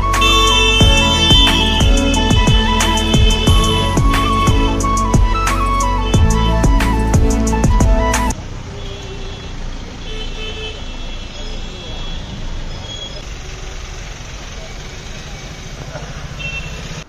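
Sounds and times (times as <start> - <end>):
background music: 0.0 - 8.4
short horn toots: 0.1 - 7.1
cars rolling past: 11.4 - 17.0.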